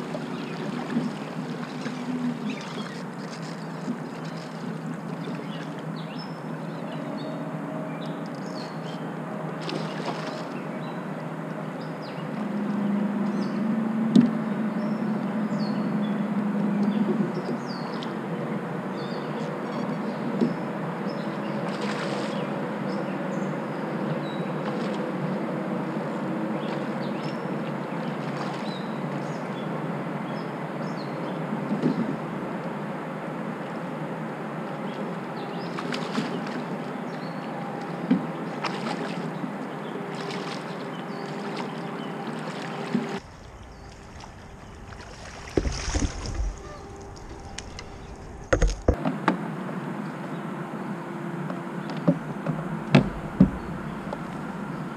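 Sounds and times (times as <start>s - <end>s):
kayak drive humming: 0.0s - 54.9s
water noise: 0.0s - 54.9s.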